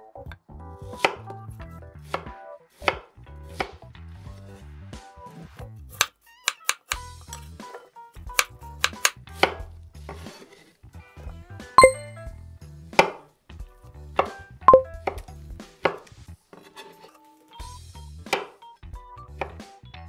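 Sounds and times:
knife ringing clink: 11.8s - 12.2s.

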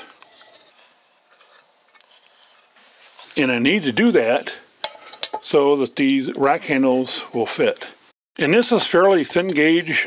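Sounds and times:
light metal handling: 4.8s - 5.5s.

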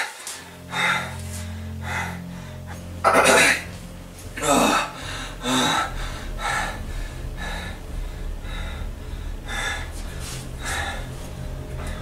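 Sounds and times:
low steady hum: 0.4s - 12.0s.

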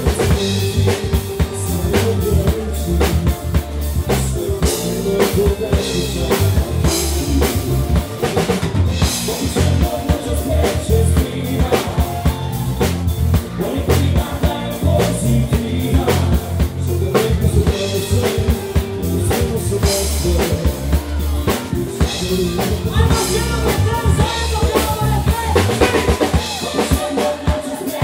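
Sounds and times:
drum kit beat: 0.0s - 28.0s
electric bass: 0.0s - 28.0s.

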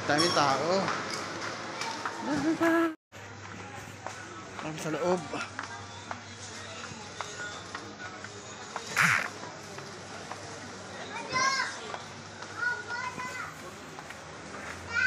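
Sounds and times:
short high-pitched calls: 9.0s - 9.3s.

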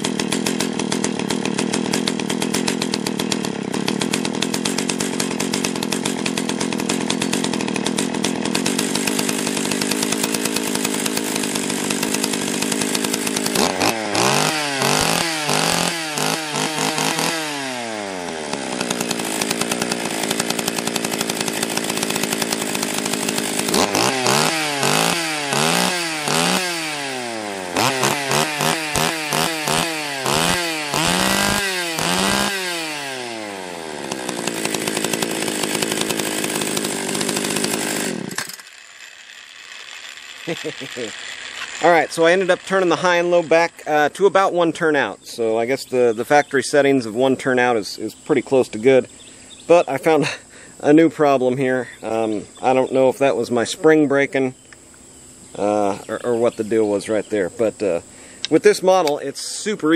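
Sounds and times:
chainsaw engine idling and revving: 0.0s - 59.9s.

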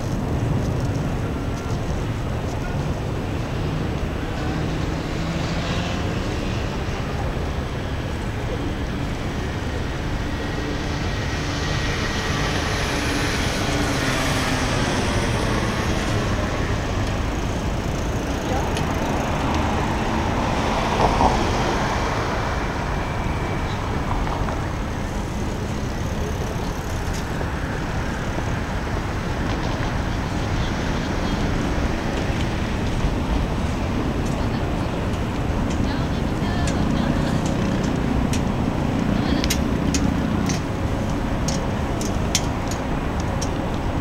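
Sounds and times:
road traffic rumble: 0.0s - 44.0s.

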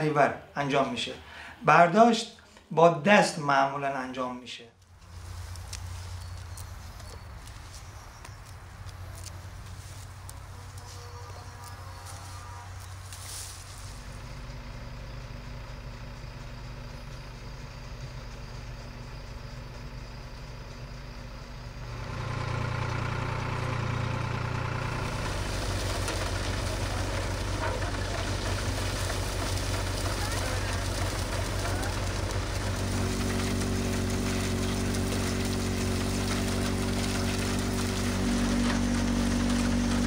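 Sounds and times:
engine driving threshing machine: 4.8s - 40.0s.

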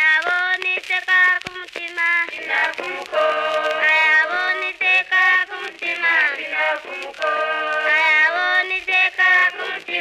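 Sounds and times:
layered vocal harmonies: 2.0s - 10.0s.

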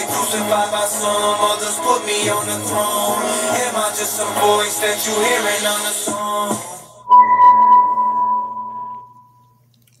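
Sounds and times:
ringing tone: 7.1s - 9.4s.

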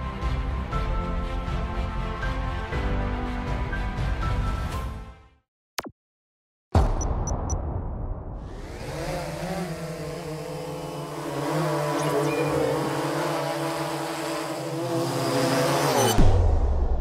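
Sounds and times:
drone propellers whirring: 8.4s - 16.5s.

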